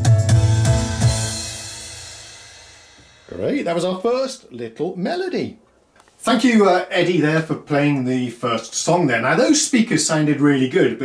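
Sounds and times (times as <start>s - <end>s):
cymbal crash: 0.4s - 3.7s.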